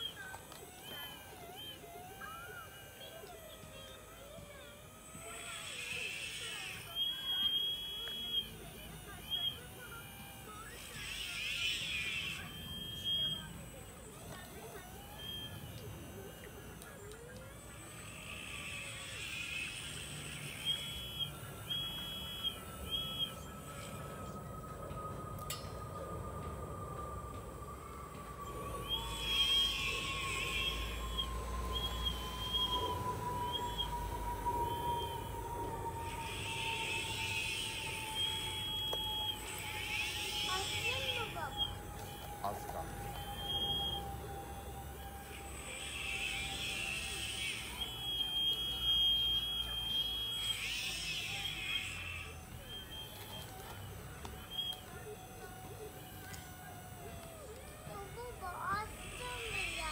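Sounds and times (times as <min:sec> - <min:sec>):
electric motors whining: 0:00.0 - 0:59.9.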